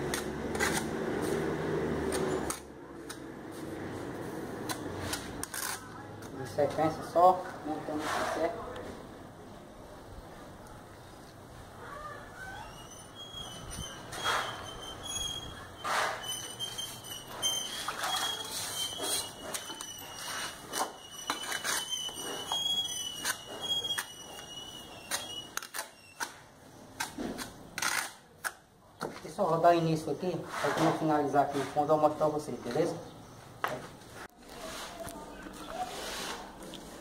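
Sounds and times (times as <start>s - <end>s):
high squeaky tone: 11.8s - 26.2s
trowel scraping and tapping: 17.6s - 26.4s.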